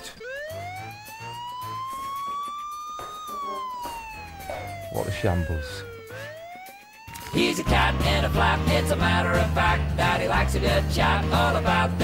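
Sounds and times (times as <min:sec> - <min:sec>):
wailing siren: 0:00.0 - 0:10.5
intermittent low notes: 0:03.4 - 0:06.2.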